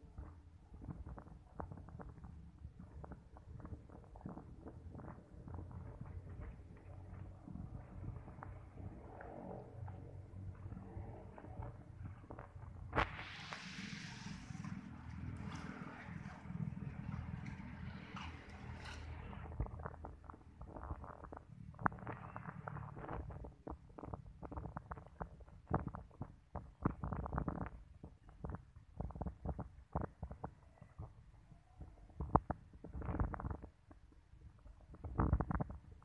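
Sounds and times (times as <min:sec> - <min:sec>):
low outdoor background rumble: 0:00.0 - 0:36.0
microphone wind and handling noise: 0:00.0 - 0:36.0.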